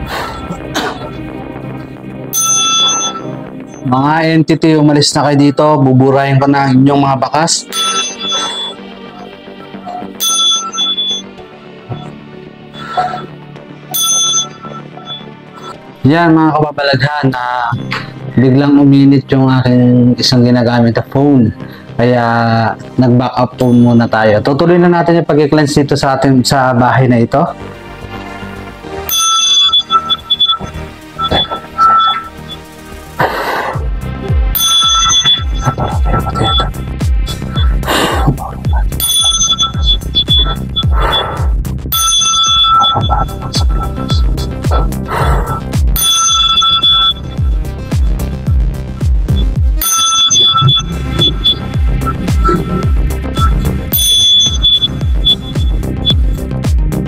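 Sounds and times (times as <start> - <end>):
background music: 0.0 - 57.0
small chime bell ringing: 2.3 - 3.4, 7.7 - 12.1, 13.9 - 15.8, 23.6 - 24.1, 29.1 - 32.6, 34.6 - 37.9, 38.6 - 41.1, 41.9 - 48.2, 49.8 - 56.2.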